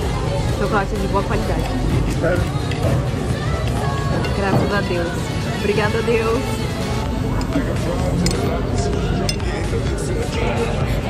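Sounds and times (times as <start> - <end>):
background chatter: 0.0 - 11.0
background music: 0.0 - 11.0
metal cutlery clinking: 8.2 - 8.6.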